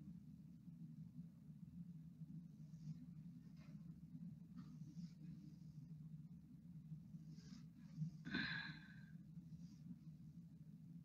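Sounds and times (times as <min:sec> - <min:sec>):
faint low hum: 0:00.0 - 0:11.0
person sighing softly: 0:08.2 - 0:09.2.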